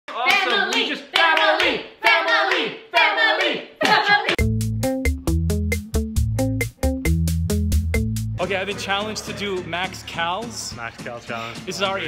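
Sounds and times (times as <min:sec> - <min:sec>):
voices chanting together: 0:00.1 - 0:04.4
hand claps: 0:03.8 - 0:04.4.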